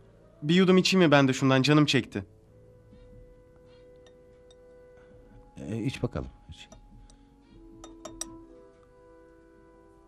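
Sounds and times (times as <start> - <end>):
soft background music: 0.0 - 10.0
drinking glass clinks: 7.8 - 8.4.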